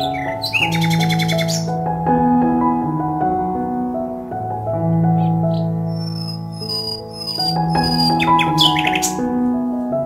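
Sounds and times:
bird chattering trill: 0:00.0 - 0:01.7, 0:05.5 - 0:09.2
bird chirps: 0:00.0 - 0:01.8, 0:05.2 - 0:09.3
soft background music: 0:00.0 - 0:10.0.

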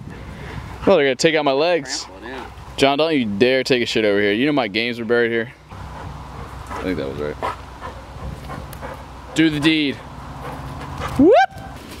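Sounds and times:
dog yelp rising in pitch: 0:11.1 - 0:11.8.

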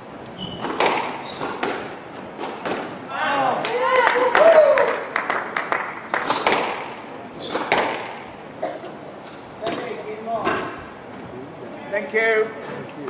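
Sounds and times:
shoes squeaking on wooden floor: 0:00.0 - 0:02.8, 0:06.1 - 0:08.0, 0:08.9 - 0:11.3
squash ball cracking off rackets: 0:00.6 - 0:03.0, 0:06.1 - 0:08.3.

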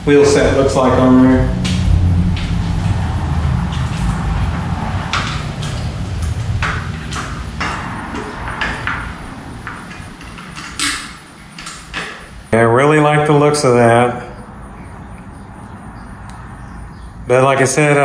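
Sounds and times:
low rumble: 0:00.0 - 0:12.6
bicycle wheel clicks and knocks: 0:01.6 - 0:12.4.

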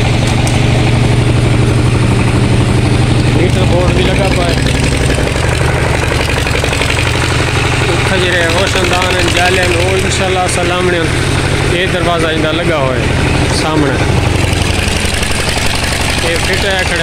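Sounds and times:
engine running with low rapid beat: 0:00.0 - 0:17.0.

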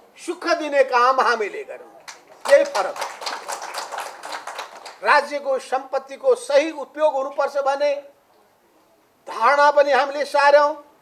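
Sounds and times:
small audience clapping: 0:02.0 - 0:05.1.

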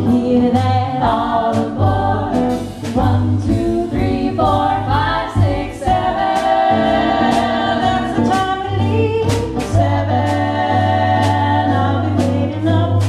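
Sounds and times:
drums keeping a beat: 0:00.0 - 0:13.0
guitar: 0:00.0 - 0:13.0
women singing in harmony: 0:00.0 - 0:13.0.

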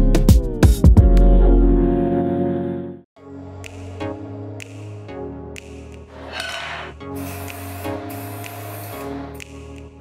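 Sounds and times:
background music: 0:00.0 - 0:10.0
aerosol spray paint hissing: 0:06.3 - 0:09.5.

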